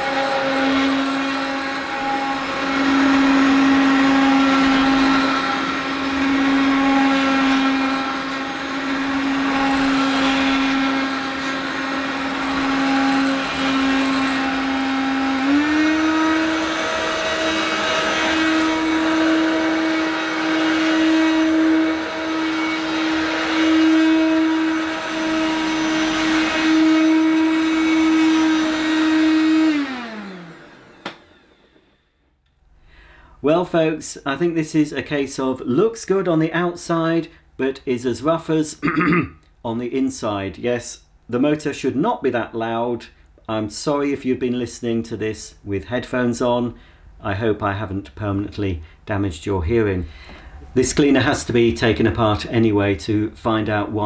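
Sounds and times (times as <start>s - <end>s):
vacuum cleaner motor running: 0.0s - 32.0s.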